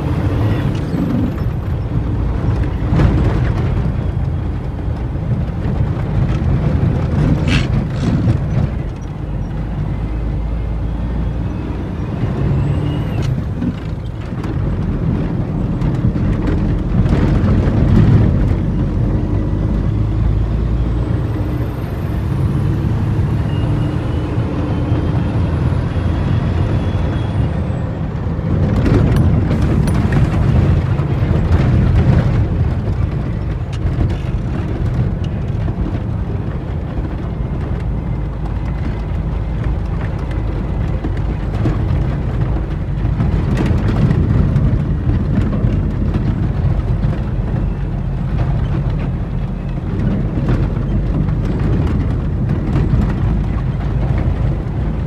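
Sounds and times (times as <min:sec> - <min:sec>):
cab knocking and rattling: 0:00.0 - 0:21.8, 0:26.6 - 0:55.0
truck diesel engine under load: 0:00.0 - 0:55.0.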